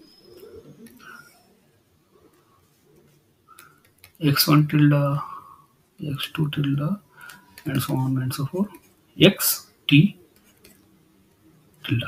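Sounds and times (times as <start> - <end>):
faint bird cooing: 0.0 - 3.0.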